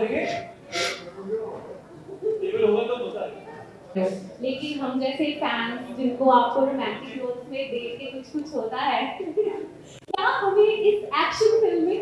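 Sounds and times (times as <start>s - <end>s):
woman talking: 0.0s - 0.4s, 4.0s - 12.0s.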